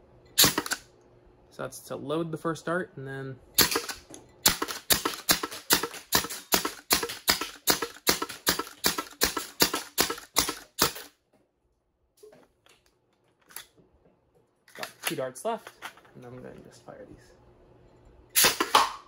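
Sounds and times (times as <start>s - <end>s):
foam dart blaster firing: 18.4s - 19.0s.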